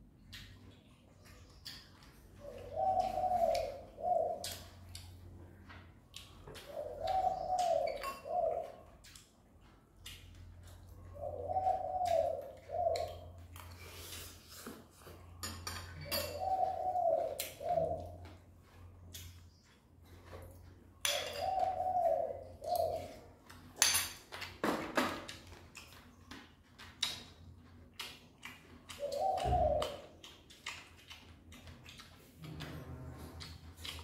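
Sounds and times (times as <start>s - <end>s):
dove cooing: 2.3s - 5.7s, 6.5s - 9.0s, 10.6s - 13.5s, 15.9s - 18.8s, 21.0s - 23.4s, 28.9s - 30.2s
spoons clicking against bowls: 7.6s - 8.4s.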